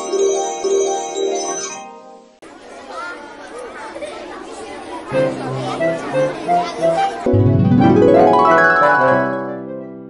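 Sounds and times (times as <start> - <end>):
chattering voices: 2.4 - 9.7
background music: 5.2 - 10.0.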